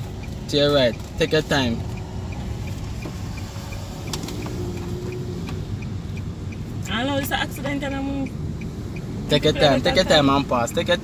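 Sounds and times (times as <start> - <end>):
engine and road rumble: 0.0 - 11.0
turn signal ticking: 0.0 - 11.0.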